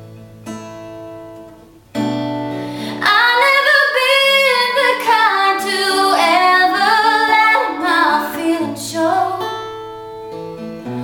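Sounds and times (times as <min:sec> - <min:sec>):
acoustic guitar chords: 0:00.0 - 0:11.0
woman singing a ballad: 0:02.8 - 0:09.8.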